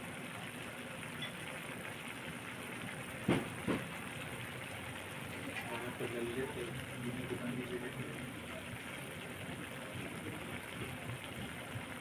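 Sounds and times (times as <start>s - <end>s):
sauce bubbling and sizzling in wok: 0.0s - 12.0s.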